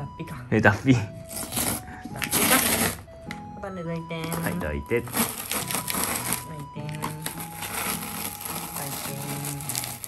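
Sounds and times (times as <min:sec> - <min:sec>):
packing tape ripping off cardboard: 0:01.2 - 0:03.2, 0:05.0 - 0:10.0.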